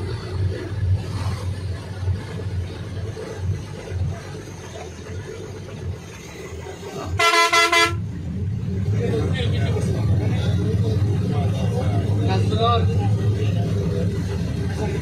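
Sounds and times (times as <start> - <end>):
low vehicle rumble: 0.0 - 15.0
vehicle horn honk: 7.2 - 8.0.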